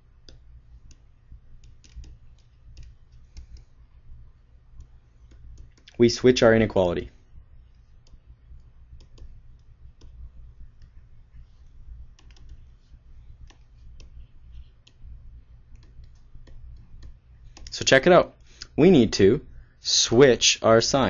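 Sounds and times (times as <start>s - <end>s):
low steady hum: 0.0s - 21.0s
stylus tapping on screen: 0.2s - 3.8s, 4.6s - 6.0s, 7.7s - 17.7s.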